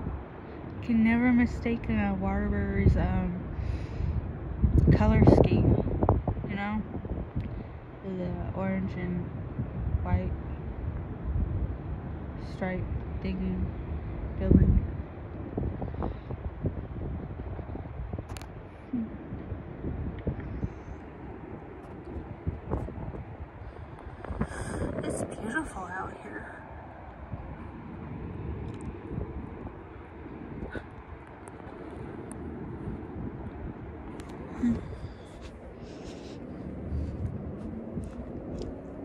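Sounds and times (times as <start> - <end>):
low city rumble: 0.0 - 39.0
wind buffeting microphone: 0.0 - 39.0.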